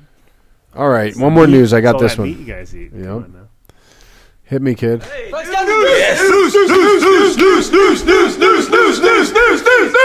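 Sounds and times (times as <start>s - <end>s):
shouted voice-like cry warbling: 5.1s - 10.0s.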